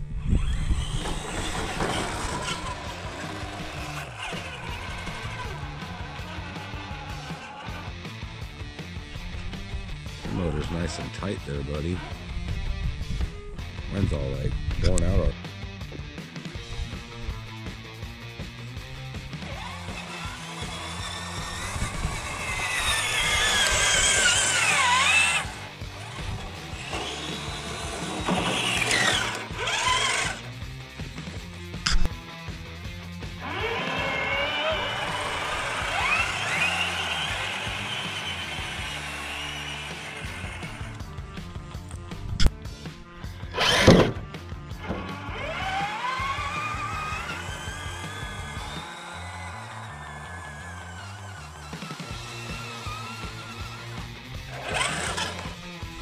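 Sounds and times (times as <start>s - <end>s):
electric motors whining: 0.0s - 13.8s, 16.5s - 56.0s
background music: 1.3s - 56.0s.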